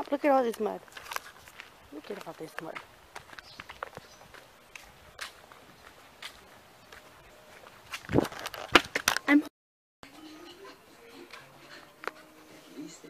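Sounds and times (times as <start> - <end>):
footsteps on muddy gravel: 0.0 - 9.4.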